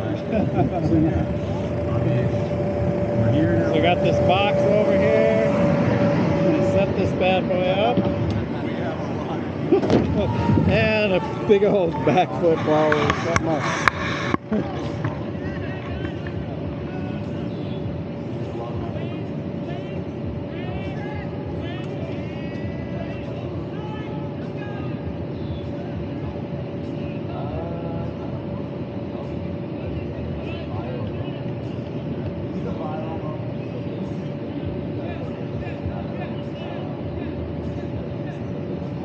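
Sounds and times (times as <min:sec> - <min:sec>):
electric blower humming: 0:00.0 - 0:15.4.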